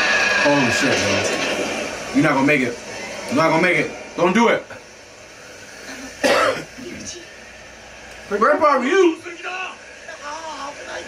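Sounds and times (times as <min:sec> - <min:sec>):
man clearing throat: 0:06.0 - 0:07.0.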